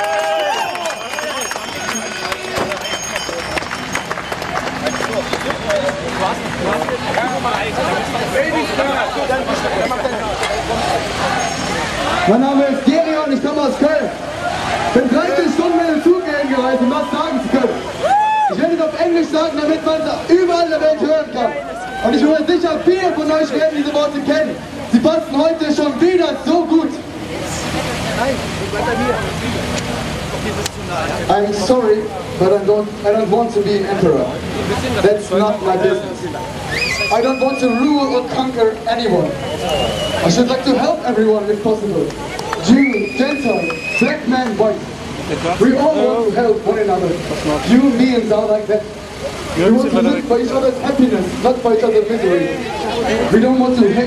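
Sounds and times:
hand clapping: 0.0s - 7.4s
crowd chatter: 0.0s - 54.0s
truck engine rumbling: 0.0s - 54.0s.

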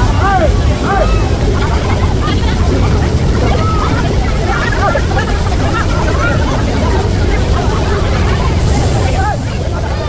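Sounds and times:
children calling out: 0.0s - 10.0s
low rumble: 0.0s - 10.0s.

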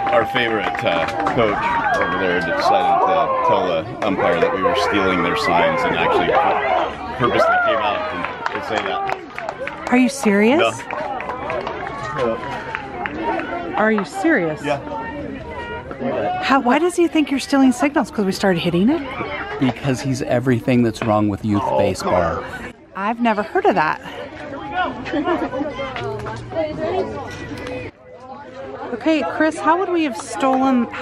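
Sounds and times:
people chattering: 0.0s - 31.0s
babble of voices: 0.6s - 19.9s, 21.2s - 31.0s.

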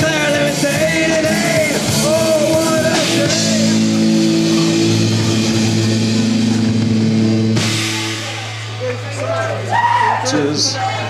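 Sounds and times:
rock band sustained guitar chord: 0.0s - 9.2s.

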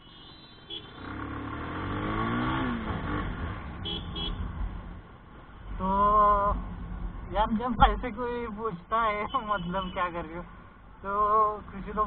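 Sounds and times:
motorcycle engine accelerating: 1.0s - 3.8s.

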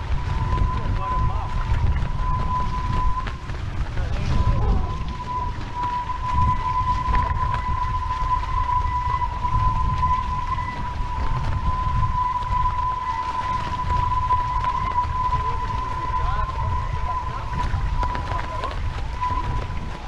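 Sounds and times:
steady high whine: 0.0s - 20.0s
water rushing past hulls: 0.0s - 20.0s
wind buffeting microphone: 0.0s - 20.0s.

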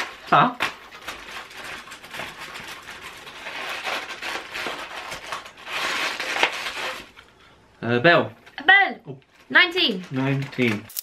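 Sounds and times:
cardboard crinkling and clicking: 0.0s - 7.2s.

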